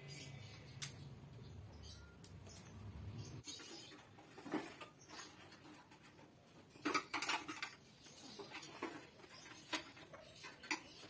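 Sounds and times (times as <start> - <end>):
sharp clicks: 0.8 - 1.0.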